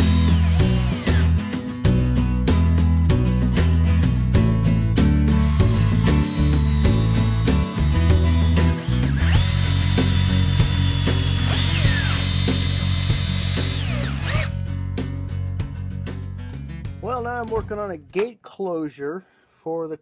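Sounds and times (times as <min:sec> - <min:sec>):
power drill motor whine: 0:00.0 - 0:01.3, 0:05.4 - 0:14.5.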